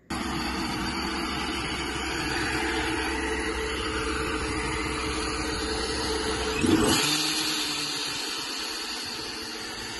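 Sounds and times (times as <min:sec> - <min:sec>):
car engine idling: 0:00.0 - 0:09.9.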